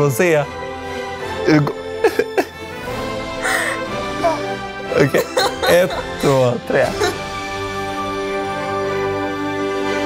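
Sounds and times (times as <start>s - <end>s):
background music: 0.0s - 10.0s
people laughing: 2.0s - 2.6s, 5.0s - 7.3s.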